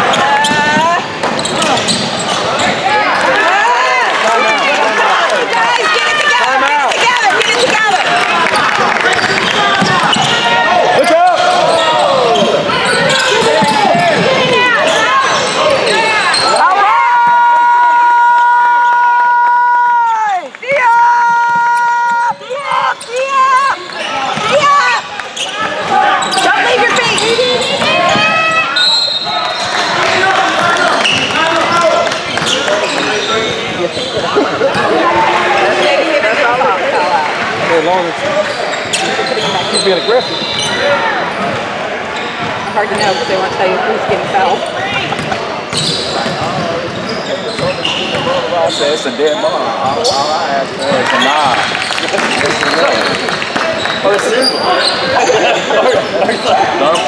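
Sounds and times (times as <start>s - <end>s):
sneakers squeaking on court: 0.0s - 3.4s, 9.1s - 16.6s, 21.5s - 29.9s, 32.2s - 35.0s, 38.4s - 52.8s, 53.5s - 57.0s
basketball bouncing: 12.2s - 15.0s, 44.9s - 48.3s.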